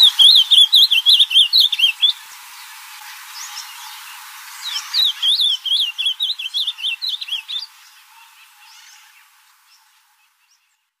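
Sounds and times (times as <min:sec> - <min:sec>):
bird singing warbling whistles: 0:00.0 - 0:02.2, 0:04.6 - 0:07.7
faint bird chirps: 0:00.0 - 0:02.2.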